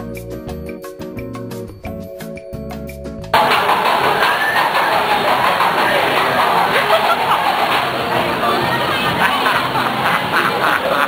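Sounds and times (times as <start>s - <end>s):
marimba-like music: 0.0s - 11.0s.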